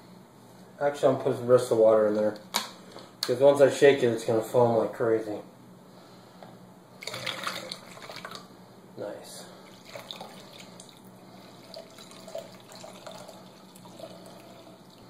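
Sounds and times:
water pouring through funnel: 0:07.0 - 0:08.4, 0:09.6 - 0:15.0.

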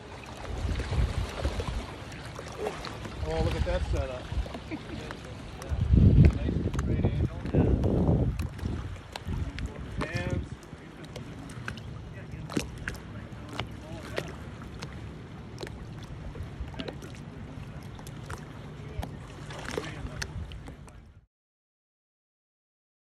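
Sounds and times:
wind rumbling on microphone: 0:00.0 - 0:02.0, 0:02.7 - 0:04.7, 0:05.5 - 0:11.8, 0:15.9 - 0:21.2
swim fins kicking water: 0:00.0 - 0:21.1
water lapping and gurgling: 0:00.0 - 0:21.3
light splashes and clicks: 0:00.1 - 0:21.2.

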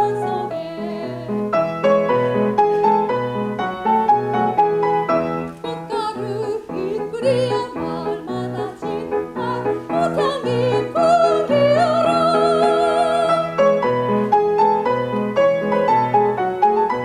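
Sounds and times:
soprano singing operatic style: 0:00.0 - 0:01.6, 0:05.5 - 0:13.9
grand piano chords: 0:00.0 - 0:17.0.

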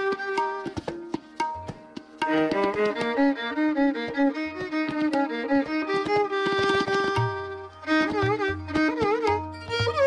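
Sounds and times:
violin playing quick runs: 0:02.2 - 0:10.0.

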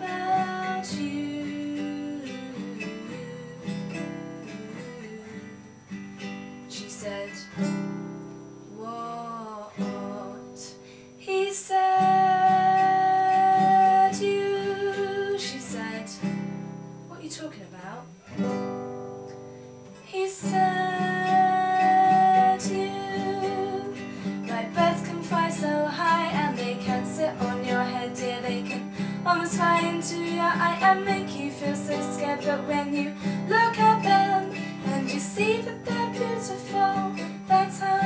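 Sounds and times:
woman singing long wordless note: 0:00.0 - 0:05.5, 0:08.7 - 0:16.2, 0:20.0 - 0:38.0
classical guitar playing: 0:00.0 - 0:38.0.

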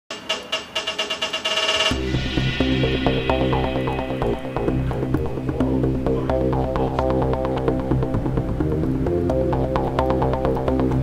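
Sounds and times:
background music: 0:00.1 - 0:11.0.

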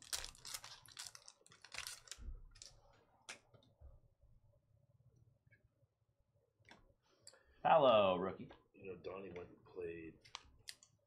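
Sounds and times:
wrapper crinkling as torn open: 0:00.0 - 0:02.8.

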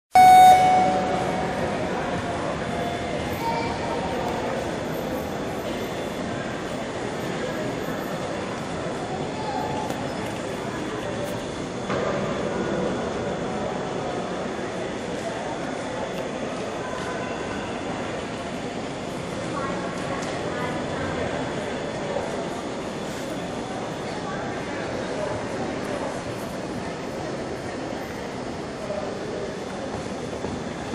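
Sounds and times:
short buzzer tone: 0:00.1 - 0:01.8
indoor arena background noise: 0:00.1 - 0:30.9.

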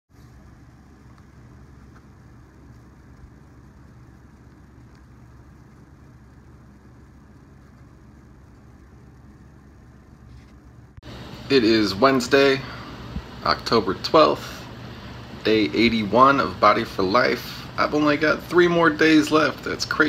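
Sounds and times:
faint hiss: 0:00.1 - 0:20.0
low hum: 0:00.1 - 0:20.0.

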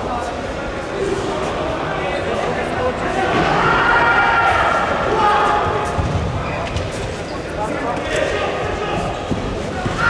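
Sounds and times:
voices calling out in a hall: 0:00.0 - 0:10.0.

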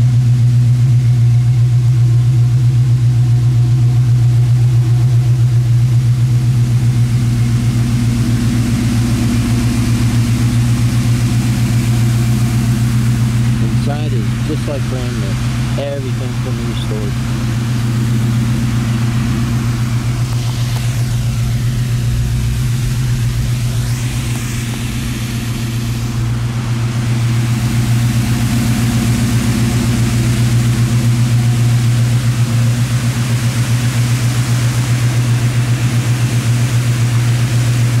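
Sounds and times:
car engine idling: 0:00.0 - 0:38.0.

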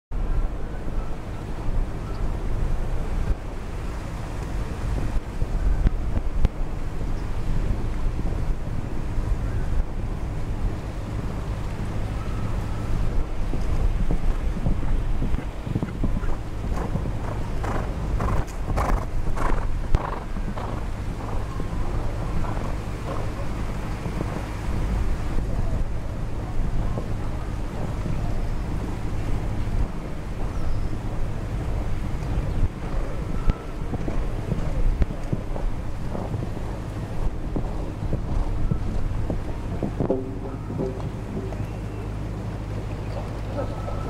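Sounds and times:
wind buffeting microphone: 0:00.1 - 0:44.0
horse hoofbeats on sand: 0:15.8 - 0:21.5.

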